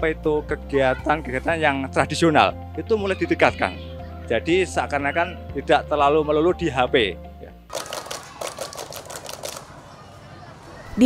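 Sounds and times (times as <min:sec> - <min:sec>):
children clapping: 0:07.7 - 0:10.5.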